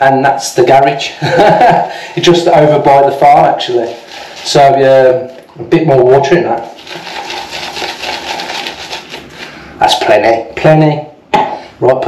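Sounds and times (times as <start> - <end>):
shaving brush swishing lather: 3.6 - 5.0, 6.6 - 9.6.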